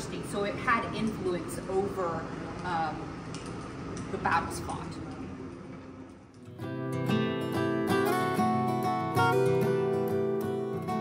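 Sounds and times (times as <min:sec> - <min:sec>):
acoustic guitar strummed chords: 0:06.5 - 0:11.0.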